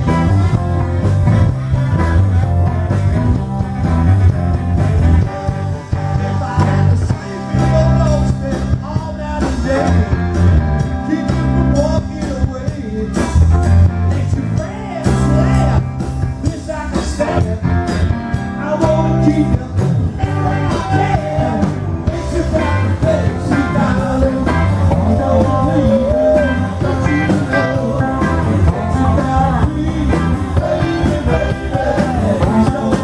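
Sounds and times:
bass guitar: 0.0s - 33.0s
drums with steady beat: 0.0s - 33.0s
electric guitars: 0.0s - 33.0s.

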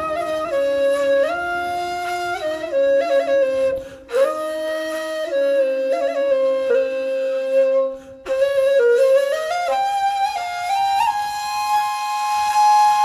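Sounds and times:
flute-like wind instrument melody: 0.0s - 13.0s.

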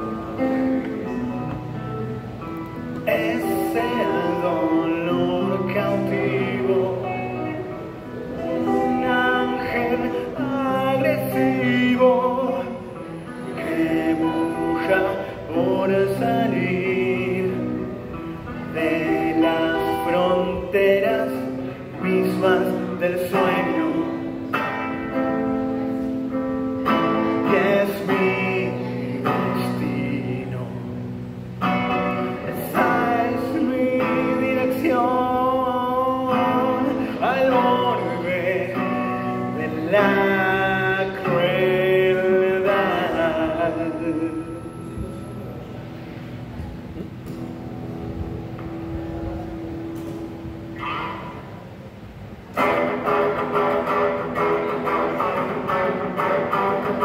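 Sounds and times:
electric guitar chords: 0.0s - 57.0s
electric guitar held note: 46.6s - 51.8s
short high-pitched sound: 50.0s - 51.9s.

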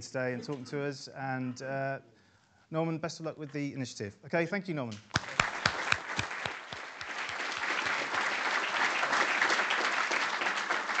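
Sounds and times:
audience applause: 5.1s - 11.0s.

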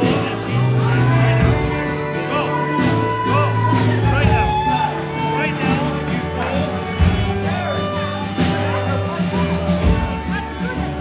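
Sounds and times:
voices speaking: 0.0s - 11.0s
worship band playing slow music: 0.0s - 11.0s.

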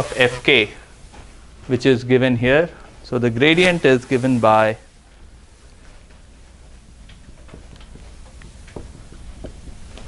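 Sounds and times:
low room hum: 0.0s - 10.0s
marker tapping and scraping whiteboard: 7.2s - 10.0s.

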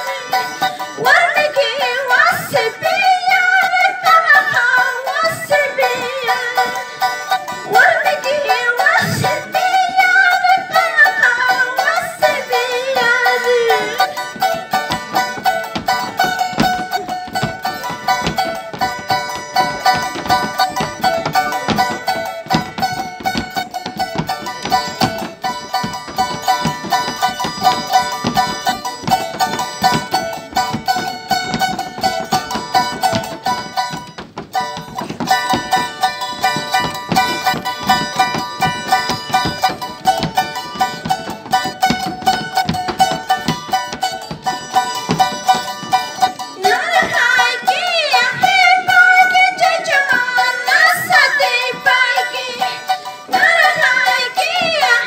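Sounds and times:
charango strummed fast: 0.0s - 55.0s
held melody line: 0.0s - 55.0s.

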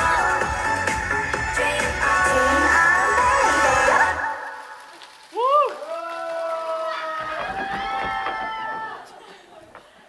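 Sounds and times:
pop song backing track: 0.0s - 4.6s.

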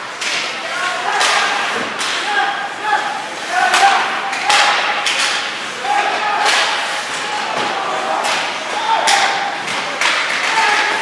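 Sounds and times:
hockey sticks and puck knocking: 0.0s - 2.3s, 3.6s - 11.0s
players shouting: 0.5s - 11.0s.

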